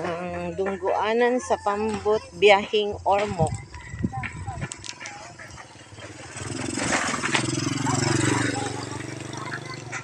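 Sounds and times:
small motorcycle engine passing: 0:05.2 - 0:10.0.

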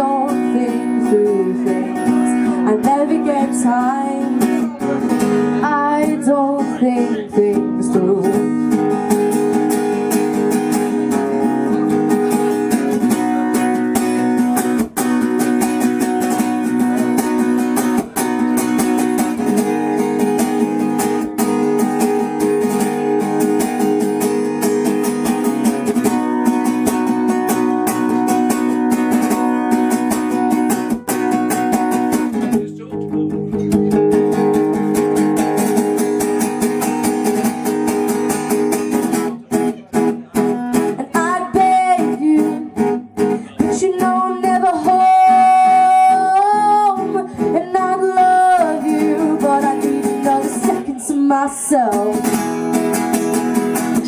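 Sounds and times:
young woman singing: 0:00.0 - 0:04.8, 0:05.5 - 0:09.1, 0:40.6 - 0:52.6
acoustic guitar strumming: 0:00.0 - 0:54.0.

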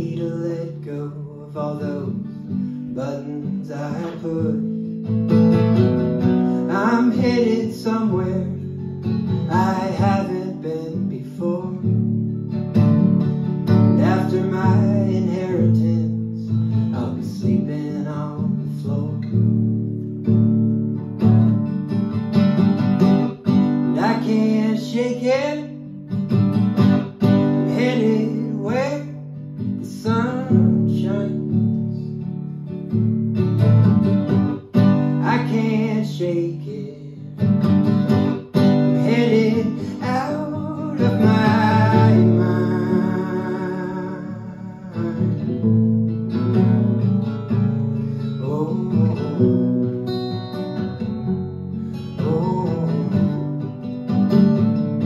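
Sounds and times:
man singing: 0:00.0 - 0:04.9, 0:06.4 - 0:12.2, 0:13.8 - 0:19.5, 0:23.9 - 0:25.9, 0:27.6 - 0:32.2, 0:34.8 - 0:37.5, 0:38.6 - 0:45.8, 0:46.4 - 0:50.3, 0:51.9 - 0:53.7
acoustic guitar strumming: 0:00.0 - 0:55.0.

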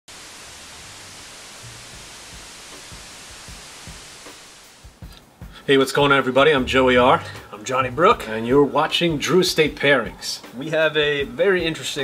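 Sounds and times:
television static hiss: 0:00.1 - 0:12.0
soft low thumps: 0:04.9 - 0:08.2.

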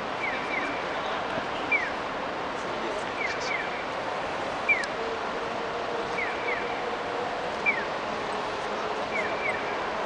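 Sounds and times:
city traffic noise: 0:00.0 - 0:10.0.

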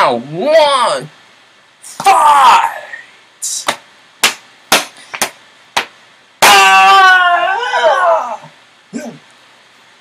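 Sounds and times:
boy yelling: 0:01.9 - 0:03.0, 0:06.4 - 0:08.5
sharp knocks: 0:03.6 - 0:06.6.

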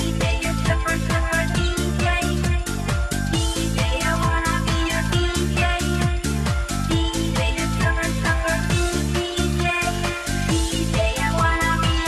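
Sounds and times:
pulsing kick drum: 0:00.0 - 0:12.0.

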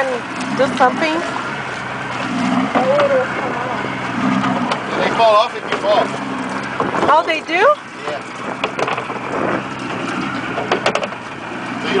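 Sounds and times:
knocks and clatters on boat: 0:00.0 - 0:12.0
outboard motor idling: 0:00.0 - 0:12.0.

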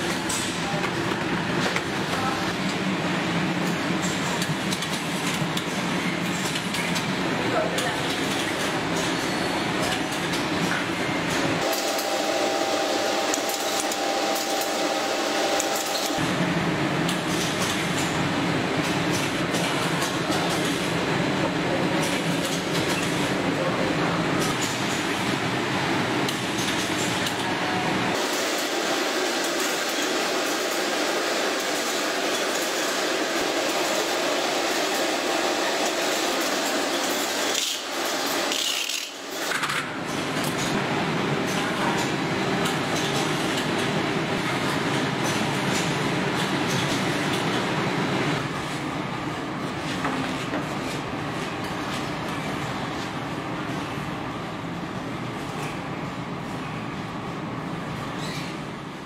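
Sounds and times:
packaging machinery running: 0:00.0 - 0:56.6.

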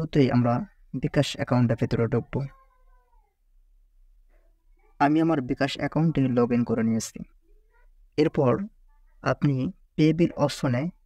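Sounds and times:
person speaking: 0:00.0 - 0:03.0, 0:04.7 - 0:11.0.

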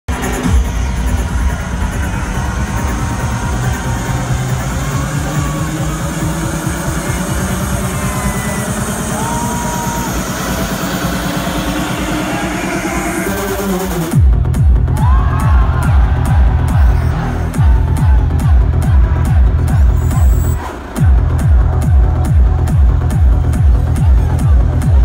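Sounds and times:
loud electronic dance music: 0:00.1 - 0:25.0.

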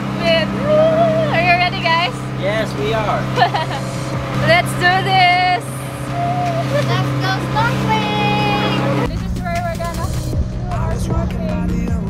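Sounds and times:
boat engine humming: 0:00.0 - 0:12.0
people talking and laughing: 0:00.2 - 0:11.1.

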